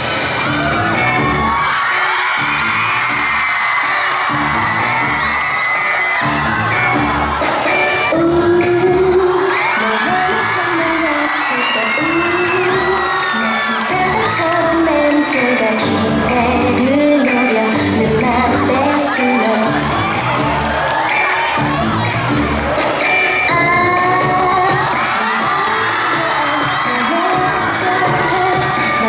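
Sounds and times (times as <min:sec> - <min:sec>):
pop song over speakers: 0:00.0 - 0:29.0.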